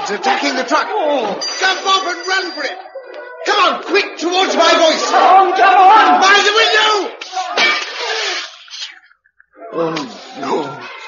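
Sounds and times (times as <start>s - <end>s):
people shouting: 3.2s - 8.7s, 9.5s - 11.0s
man speaking: 9.8s - 11.0s.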